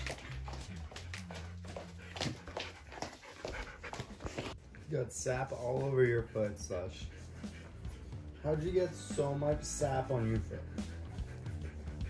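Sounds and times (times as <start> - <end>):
dog panting: 0.0 - 12.0
background music with bass: 4.7 - 12.0.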